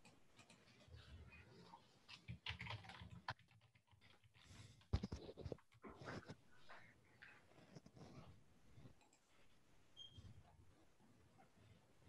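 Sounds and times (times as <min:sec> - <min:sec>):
faint keyboard typing and clicks: 0:00.0 - 0:09.4.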